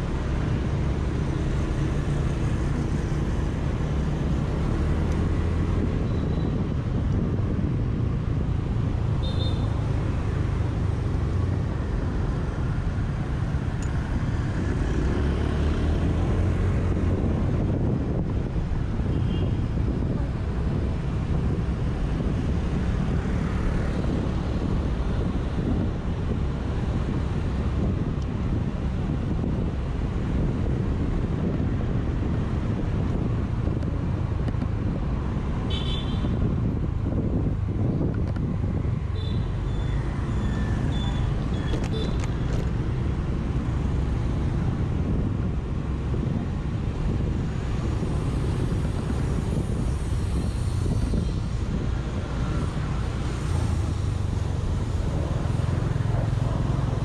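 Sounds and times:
traffic: 0:00.0 - 0:57.0
wind on microphone: 0:00.0 - 0:57.0.

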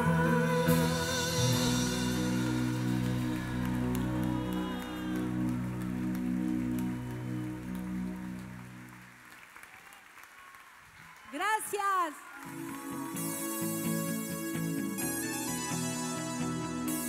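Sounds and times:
audience clapping: 0:01.5 - 0:13.7.

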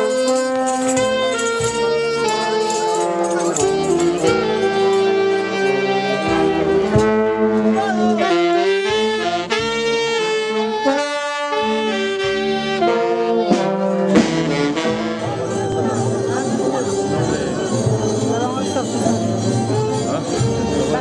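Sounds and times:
brass band playing slow melody: 0:00.0 - 0:21.0.

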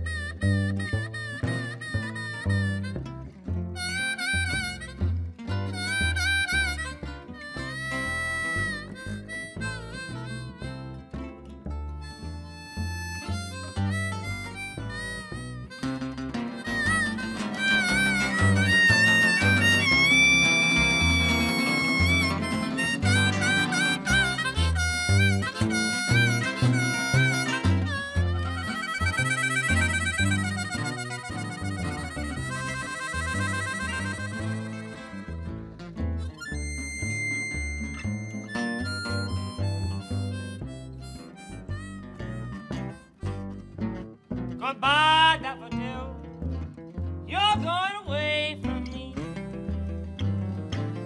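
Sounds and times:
harmonica with bending notes: 0:00.0 - 0:48.5
strummed acoustic guitars: 0:00.0 - 0:51.0
walking upright bass: 0:00.0 - 0:51.0.

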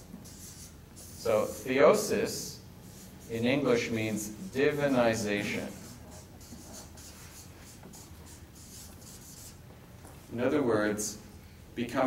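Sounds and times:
marker writing on paper: 0:00.0 - 0:01.7, 0:04.5 - 0:09.6.

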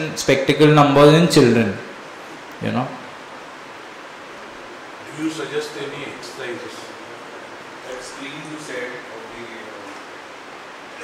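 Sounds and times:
room background hiss: 0:00.0 - 0:11.0.

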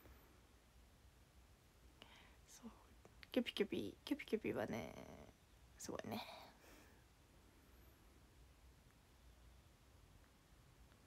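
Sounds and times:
woman whispering: 0:02.0 - 0:06.6.

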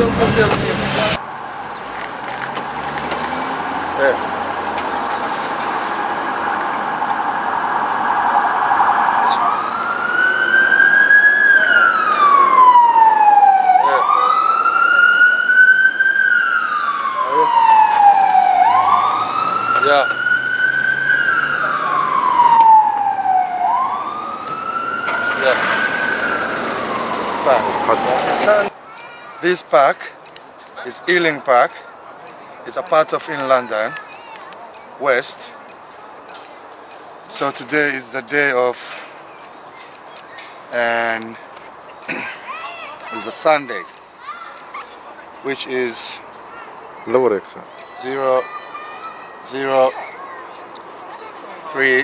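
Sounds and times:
ambulance siren: 0:00.0 - 0:02.0, 0:03.0 - 0:28.7, 0:47.7 - 0:52.0.

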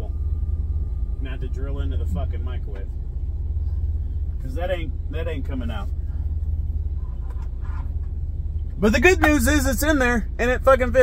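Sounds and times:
low rumble in truck cab: 0:00.0 - 0:11.0.

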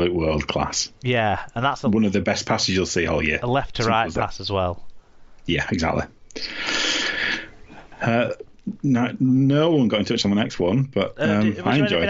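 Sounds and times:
person breathing close to microphone: 0:06.4 - 0:08.0.

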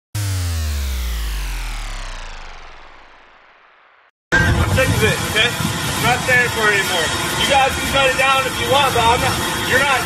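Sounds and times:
synth tone sliding down: 0:00.2 - 0:04.6.

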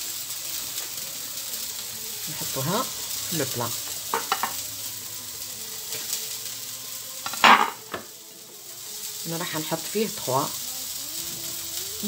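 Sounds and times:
food sizzling in a pan: 0:00.0 - 0:12.0.

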